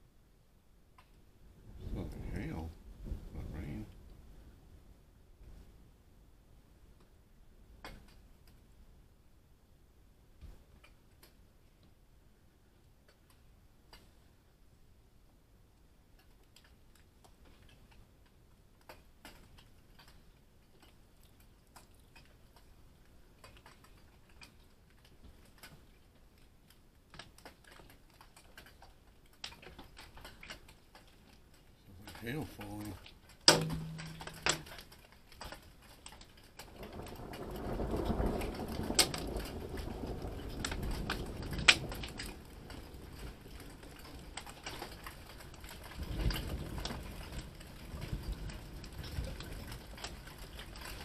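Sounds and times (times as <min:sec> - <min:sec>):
hailstones clicking on hard surfaces: 0:16.2 - 0:51.0
rain falling: 0:16.2 - 0:51.0.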